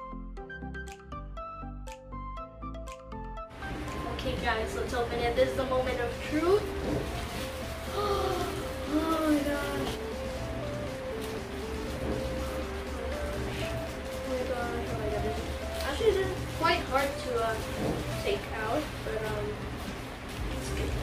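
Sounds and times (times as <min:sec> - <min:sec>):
background music with held notes: 0:00.0 - 0:21.0
plastic wrapping crinkling: 0:04.8 - 0:21.0.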